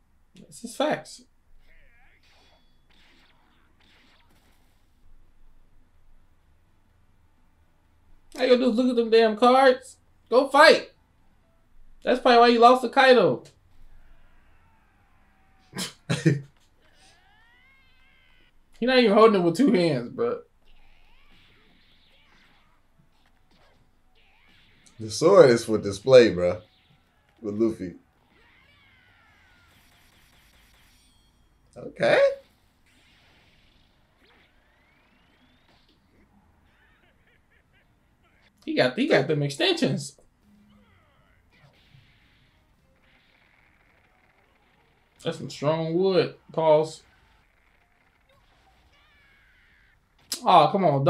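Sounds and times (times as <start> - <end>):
faint anime episode audio: 0.0 - 51.0
high-pitched meow-like calls: 17.0 - 18.6.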